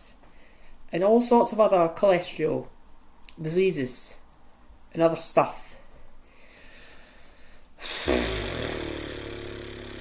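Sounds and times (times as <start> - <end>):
soft breath: 0.2 - 0.8, 5.8 - 8.1
man breathing out through nose: 6.3 - 8.8
closed-mouth hum: 7.6 - 10.0.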